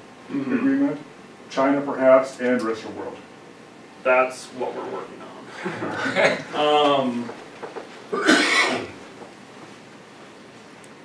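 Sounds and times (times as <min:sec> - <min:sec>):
person coughing: 0:00.3 - 0:00.8, 0:08.1 - 0:09.0.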